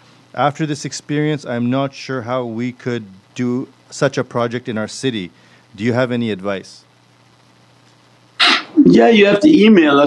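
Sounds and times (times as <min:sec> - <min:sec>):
low steady hum: 0:00.0 - 0:10.0
man speaking: 0:00.4 - 0:06.8, 0:08.8 - 0:10.0.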